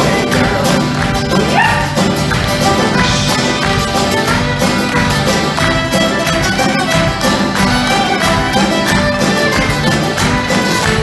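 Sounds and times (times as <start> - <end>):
folk-rock band playing: 0.0 - 11.0
rising high cry: 1.4 - 2.0.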